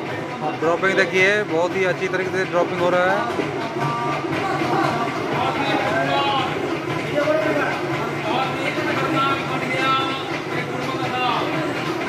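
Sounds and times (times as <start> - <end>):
machine running steadily: 0.0 - 12.0
people talking: 0.2 - 12.0.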